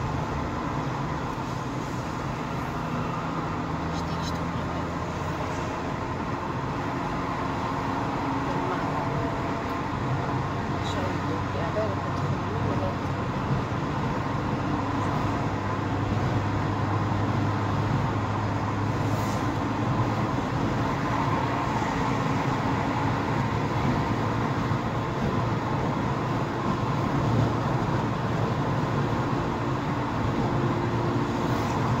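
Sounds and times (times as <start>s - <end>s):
car engine and road noise: 0.0s - 32.0s.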